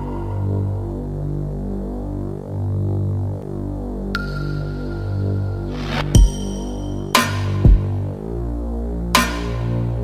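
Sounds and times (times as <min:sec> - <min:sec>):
sustained synthesizer chords: 0:00.0 - 0:10.0.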